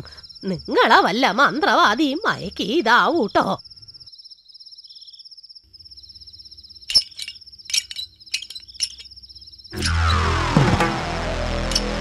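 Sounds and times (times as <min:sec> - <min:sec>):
cricket chirping: 0:00.0 - 0:09.9
music: 0:09.8 - 0:12.0.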